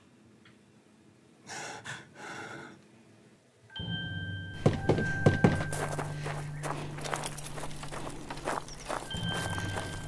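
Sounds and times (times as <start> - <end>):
low music drone with high notes: 3.7 - 10.0
footsteps on wooden steps: 4.6 - 10.0.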